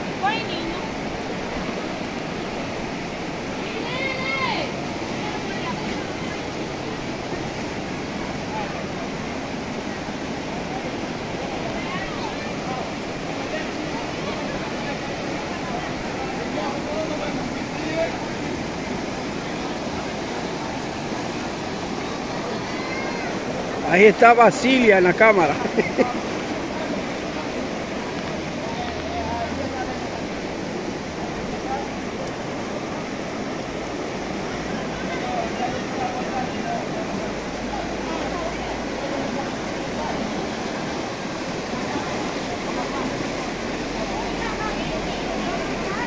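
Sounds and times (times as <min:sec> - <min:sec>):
floodwater rushing: 0:00.0 - 0:46.0.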